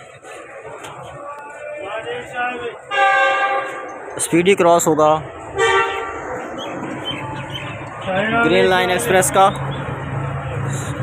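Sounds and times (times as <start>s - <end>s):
train horn blast: 2.9s - 4.0s, 5.6s - 6.2s.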